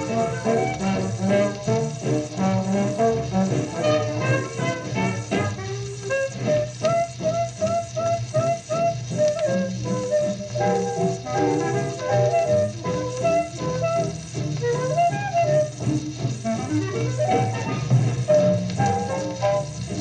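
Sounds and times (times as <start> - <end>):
old-time band music on radio: 0.0 - 20.0.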